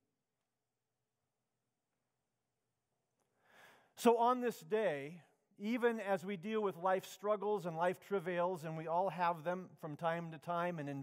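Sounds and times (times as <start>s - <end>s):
faint intake of breath: 3.3s - 4.0s.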